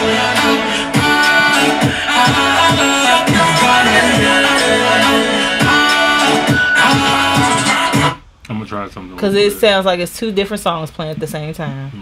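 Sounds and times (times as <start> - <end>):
song playing from laptop: 0.0 - 8.2
man speaking: 8.5 - 9.6.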